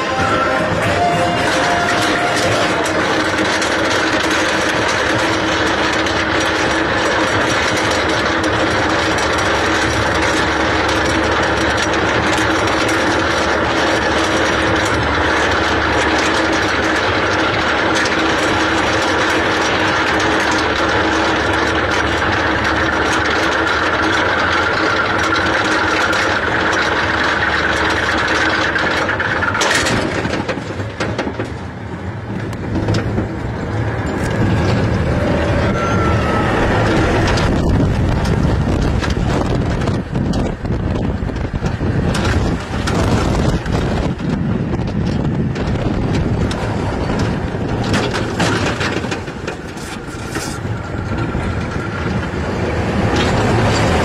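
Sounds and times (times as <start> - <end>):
constant mechanical hum: 0.0 - 54.0
lift chain clattering: 0.0 - 54.0.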